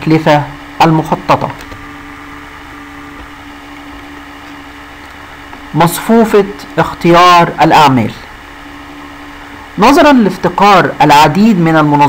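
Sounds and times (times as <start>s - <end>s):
background hum and hiss: 0.0s - 12.0s.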